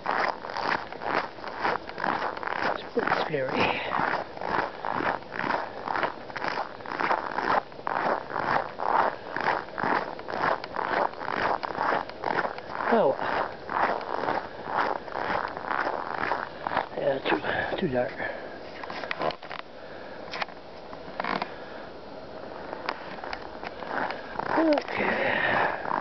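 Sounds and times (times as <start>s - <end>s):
footsteps crunching on snow: 0.0s - 19.6s, 22.4s - 26.0s.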